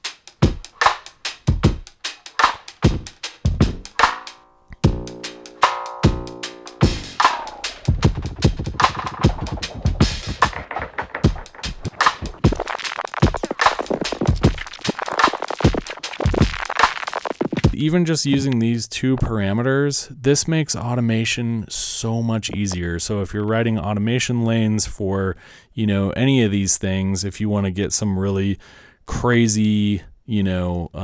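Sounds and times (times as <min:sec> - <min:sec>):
drum machine beat with delay echoes: 0:00.0 - 0:18.6.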